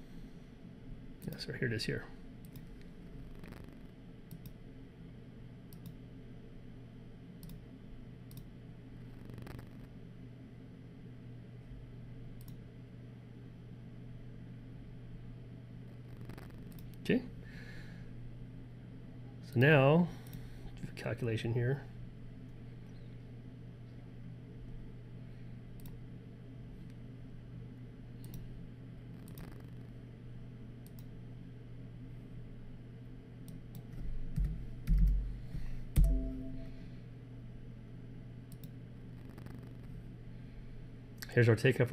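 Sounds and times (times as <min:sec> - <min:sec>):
steady low hum: 0:00.0 - 0:41.9
computer mouse clicks: 0:02.4 - 0:04.6, 0:05.7 - 0:06.0, 0:07.4 - 0:07.6, 0:08.3 - 0:08.5, 0:09.2 - 0:09.8, 0:12.4 - 0:12.6, 0:16.2 - 0:17.0, 0:25.8 - 0:26.0, 0:28.2 - 0:28.4, 0:29.2 - 0:29.9, 0:30.8 - 0:31.1, 0:38.5 - 0:39.9.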